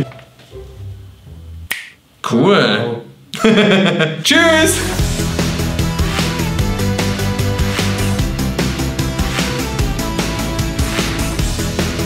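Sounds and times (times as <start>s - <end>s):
quiet background music: 0.0s - 1.7s
finger snap: 1.7s - 2.0s.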